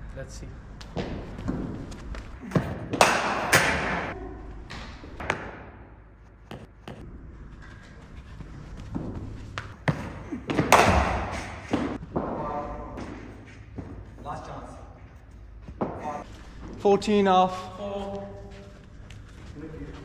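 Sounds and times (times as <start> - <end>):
cricket bat striking ball: 2.6 - 4.1, 9.8 - 12.0.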